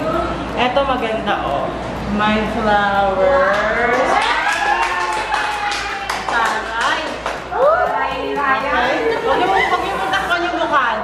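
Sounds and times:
women talking: 5.4 - 11.0
laughter: 9.1 - 10.1.

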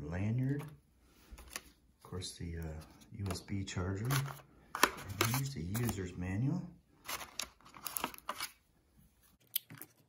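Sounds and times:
cardboard packaging rustling: 3.1 - 6.1, 7.0 - 8.6.

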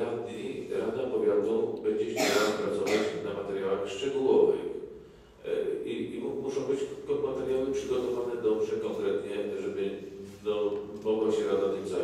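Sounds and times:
man speaking into a microphone: 0.0 - 12.0
man clearing throat: 2.1 - 3.2.

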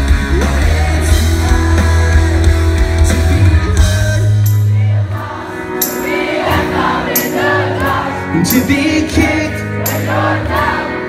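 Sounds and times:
crowd singing together: 0.0 - 11.0.

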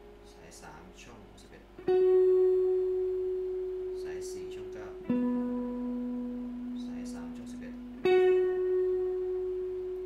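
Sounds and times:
electric guitar note ringing: 0.0 - 0.9, 1.8 - 10.0.

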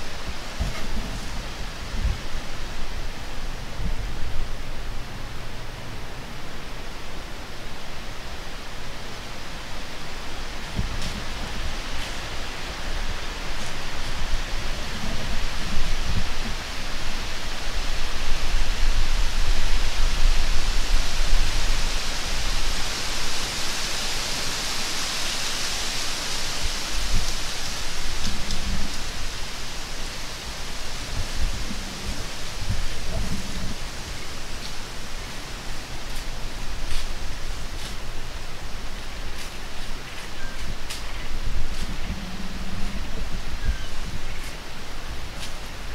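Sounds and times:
wind rumble on microphone: 0.0 - 7.3, 8.0 - 45.9
wind through dry leaves: 0.0 - 45.9.

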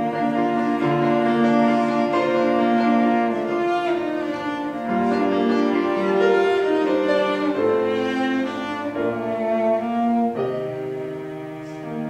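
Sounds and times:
cello long held notes: 0.0 - 12.0
piano accompaniment: 0.0 - 12.0.

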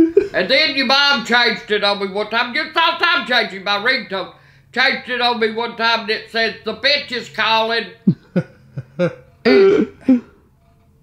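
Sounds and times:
elderly woman laughing: 0.0 - 0.4, 8.0 - 10.3.

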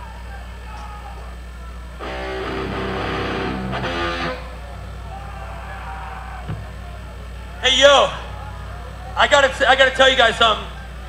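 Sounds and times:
electric guitar through amplifier: 0.0 - 11.0
steady low hum: 0.0 - 11.0.

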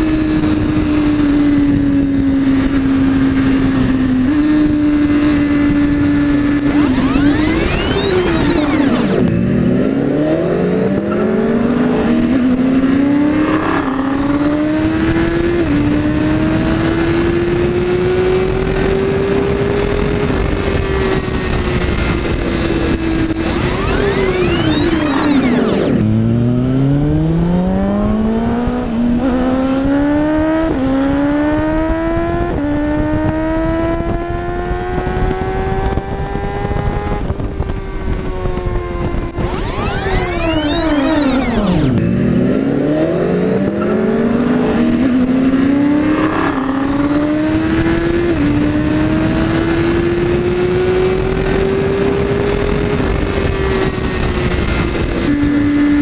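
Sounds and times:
wind noise on helmet camera: 0.0 - 6.9, 10.8 - 23.7, 27.9 - 39.6, 43.5 - 56.0
motorcycle engine accelerating: 0.0 - 56.0.

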